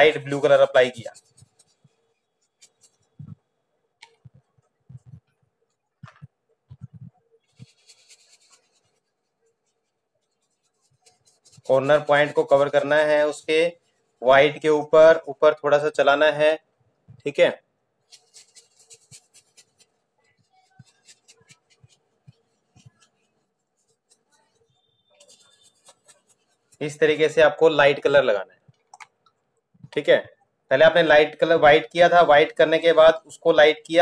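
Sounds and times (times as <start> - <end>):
paintbrush scratching on paper: 0.0 - 3.5, 4.1 - 14.9, 18.0 - 27.6.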